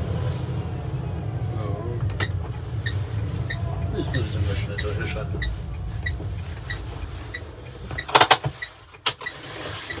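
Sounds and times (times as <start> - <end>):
low road rumble: 0.0 - 10.0
turn signal ticking: 2.0 - 10.0.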